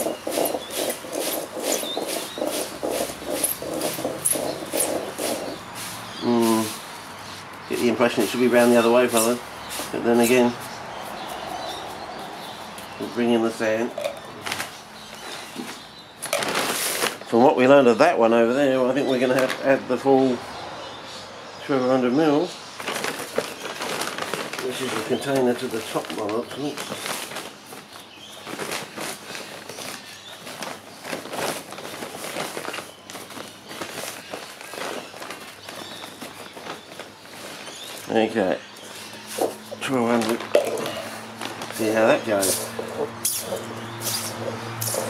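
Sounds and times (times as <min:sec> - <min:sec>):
plastic sack crinkling: 0:00.0 - 0:11.9, 0:13.0 - 0:17.4, 0:22.8 - 0:45.0.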